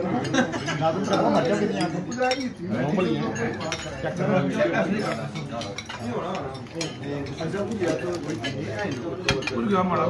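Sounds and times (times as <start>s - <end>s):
murmur of men's conversation: 0.0s - 10.0s
cutlery clinking on plates: 0.1s - 9.8s.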